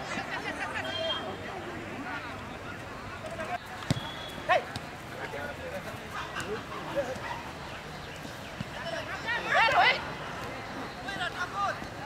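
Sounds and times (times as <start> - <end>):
spectators' voices: 0.0 - 12.0.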